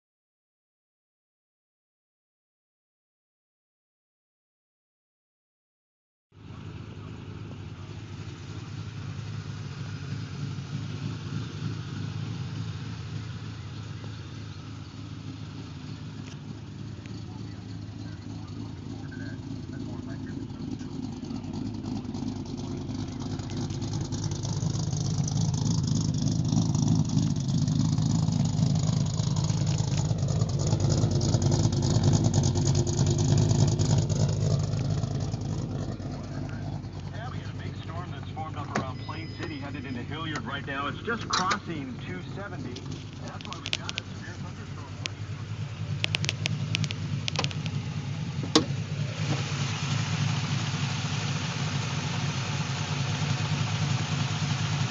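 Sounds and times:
car engine idling with thumping cam: 6.4s - 54.9s.

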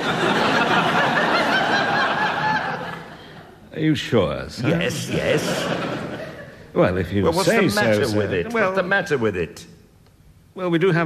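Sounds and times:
audience laughing: 0.0s - 3.5s, 4.6s - 6.7s.

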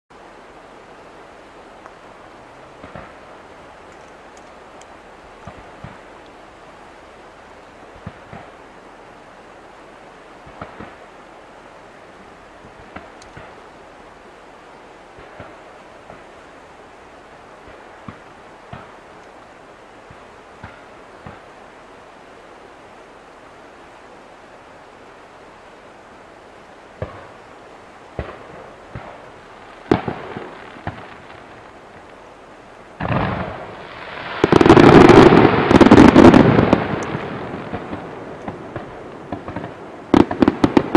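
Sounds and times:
steady hiss: 0.1s - 40.9s
distant fireworks thumps: 17.7s - 19.0s, 29.9s - 32.1s, 34.4s - 40.9s.

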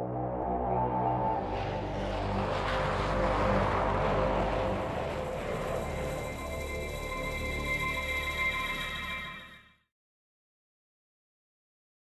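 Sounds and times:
sustained synthesizer tones: 0.0s - 9.5s.

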